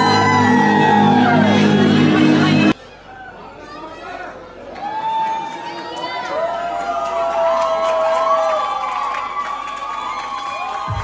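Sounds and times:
high-pitched screams: 0:00.0 - 0:02.7
audience cheering: 0:00.0 - 0:02.8, 0:04.7 - 0:11.0.

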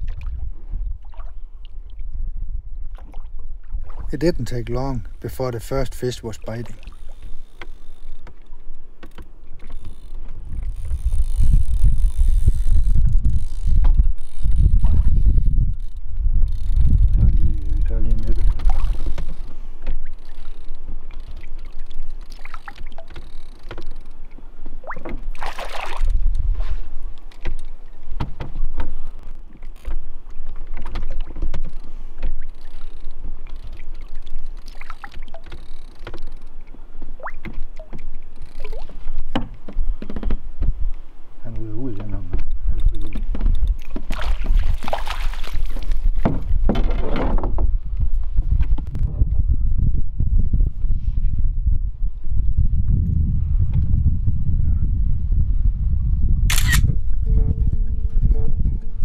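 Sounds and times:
water splashing at hull: 0:00.0 - 0:12.9, 0:16.5 - 0:49.0
microphone rumble: 0:10.4 - 0:20.1, 0:41.4 - 0:59.0
knocks against boat: 0:27.4 - 0:29.0, 0:39.1 - 0:40.8, 0:41.5 - 0:44.6, 0:46.0 - 0:47.8.

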